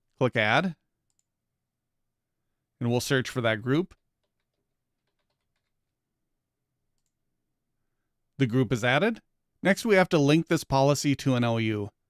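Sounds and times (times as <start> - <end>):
faint keyboard typing: 1.0 - 1.4, 3.9 - 6.0, 6.9 - 7.2.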